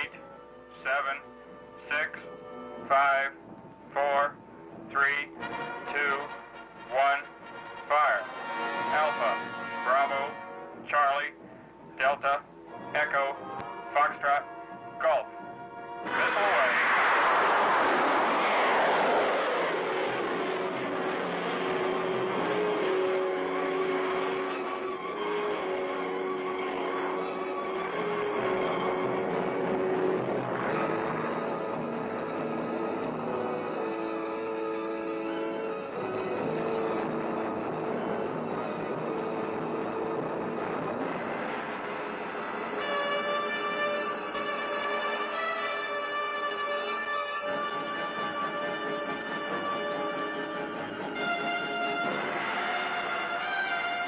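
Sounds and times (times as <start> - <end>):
film score music: 0.0 - 54.0.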